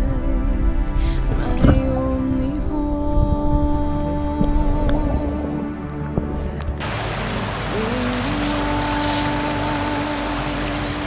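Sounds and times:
river water flowing: 0:00.0 - 0:11.0
slow background music: 0:00.0 - 0:11.0.

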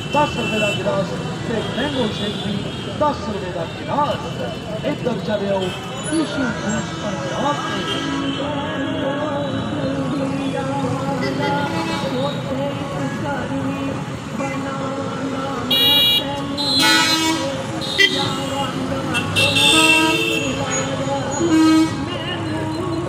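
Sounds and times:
vehicle horns honking: 0:00.0 - 0:03.0, 0:05.5 - 0:09.8, 0:11.2 - 0:12.4, 0:15.6 - 0:22.7
street traffic: 0:00.0 - 0:23.0
voices: 0:00.0 - 0:23.0.

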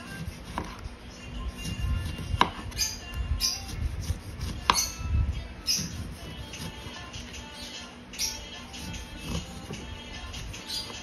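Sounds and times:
knife slicing lemon: 0:00.0 - 0:00.8, 0:01.6 - 0:05.0.

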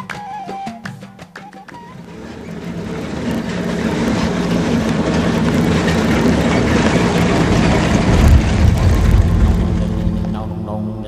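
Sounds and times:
truck driving on gravel: 0:01.6 - 0:11.0.

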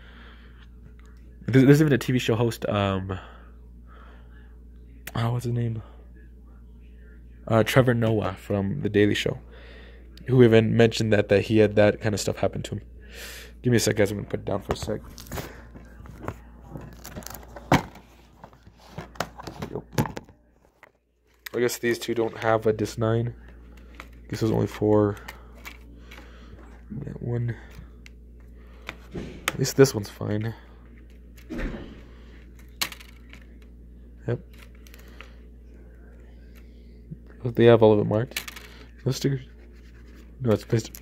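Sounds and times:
plastic case rustle: 0:14.7 - 0:22.6.

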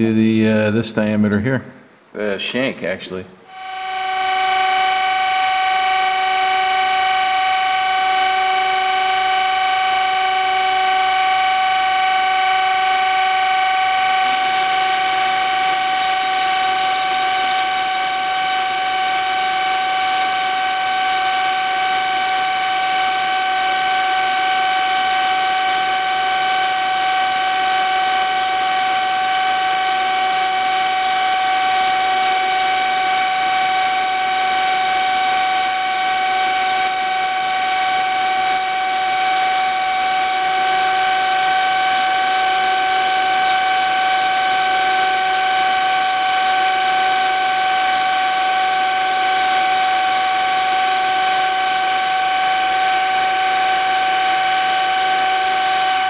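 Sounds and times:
surface grinder high whine: 0:03.5 - 0:56.0
grinding wheel cutting steel hiss: 0:13.7 - 0:56.0.

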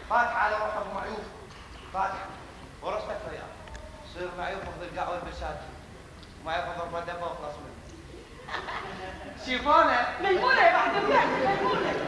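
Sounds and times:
actors speaking dialogue: 0:09.0 - 0:12.0.

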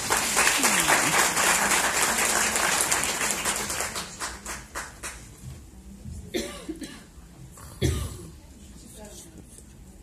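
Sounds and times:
audience applause: 0:00.0 - 0:05.3
person coughing: 0:06.4 - 0:07.1.

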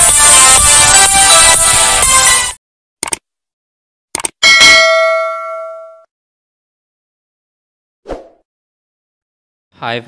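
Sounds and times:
notification bell ding: 0:04.4 - 0:06.1.

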